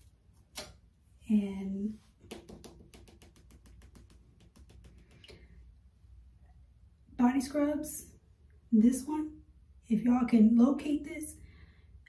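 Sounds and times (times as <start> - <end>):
plastic tub clicking in hands: 2.2 - 5.3.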